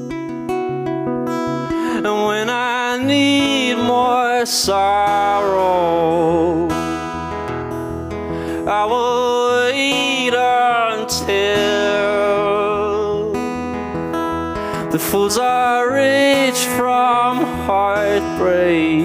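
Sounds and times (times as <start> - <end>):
strummed acoustic guitar: 0.0 - 19.0
man singing: 1.7 - 7.5, 8.3 - 19.0.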